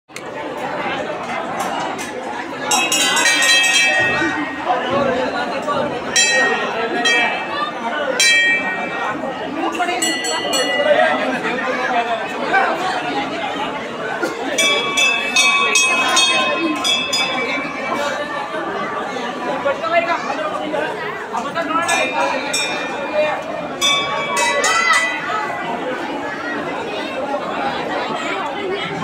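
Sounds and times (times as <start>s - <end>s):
crowd chattering: 0.1s - 29.0s
metal bell rung rapidly: 2.7s - 5.0s, 6.1s - 11.6s, 14.6s - 18.4s, 21.8s - 25.7s.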